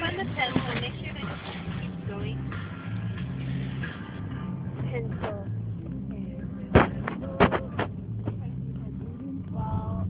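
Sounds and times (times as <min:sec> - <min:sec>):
car engine humming: 0:00.0 - 0:10.0
road noise inside car: 0:00.0 - 0:10.0.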